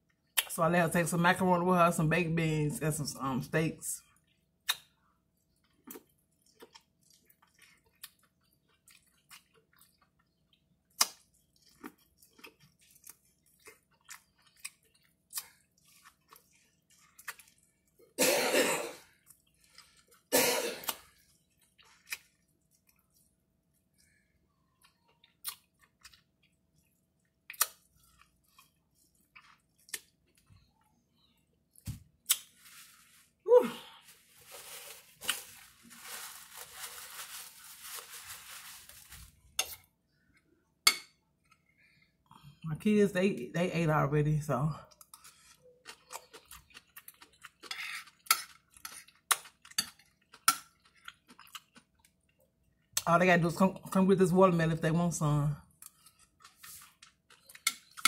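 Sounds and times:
person coughing: 18.2 - 19.0, 20.3 - 21.0
paper napkin rustling: 32.5 - 33.4, 34.0 - 39.5.

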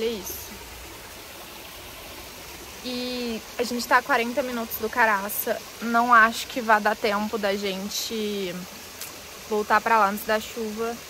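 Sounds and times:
woman speaking: 0.0 - 0.6, 2.9 - 8.6, 9.5 - 11.0
outdoor background hiss: 0.0 - 11.0.

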